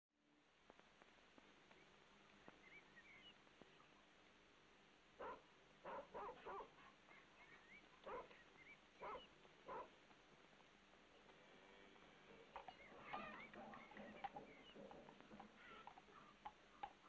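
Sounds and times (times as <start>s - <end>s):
dog barking faintly: 5.2s - 7.4s, 8.0s - 8.4s, 9.0s - 10.0s.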